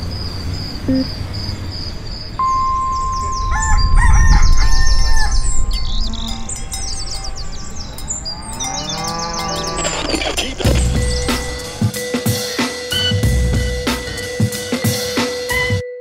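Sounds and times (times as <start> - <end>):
birds chirping: 0.0 - 12.4
steady high tone: 2.4 - 8.3
low rumble: 2.4 - 8.8
rooster crowing: 3.4 - 6.6.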